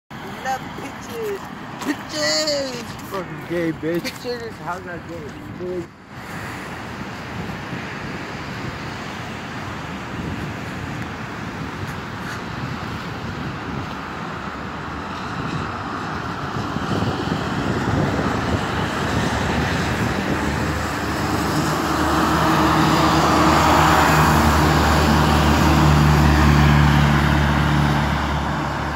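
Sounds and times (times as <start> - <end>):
bus engine drone passing: 0.2 - 28.9
traffic on wet road: 0.2 - 28.9.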